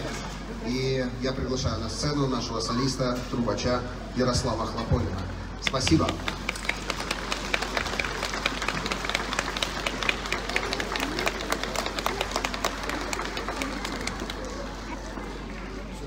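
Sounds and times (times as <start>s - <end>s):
audience applauding: 5.6s - 15.5s.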